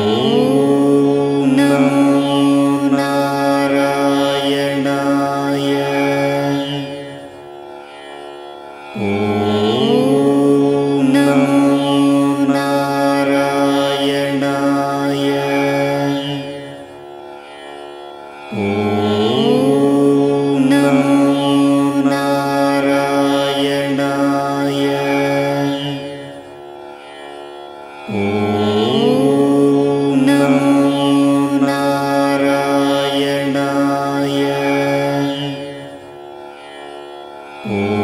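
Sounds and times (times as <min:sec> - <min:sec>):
mantra chanting: 0:00.0 - 0:07.4, 0:08.9 - 0:17.7, 0:18.4 - 0:27.3, 0:28.0 - 0:38.0
sustained drone: 0:00.0 - 0:38.0.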